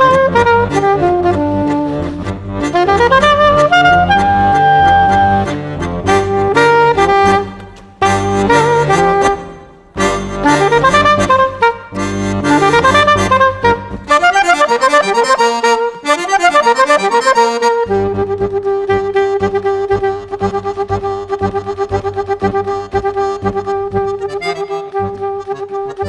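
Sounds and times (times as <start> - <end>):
accordion playing: 0.0 - 26.0
saxophone playing: 0.0 - 26.0.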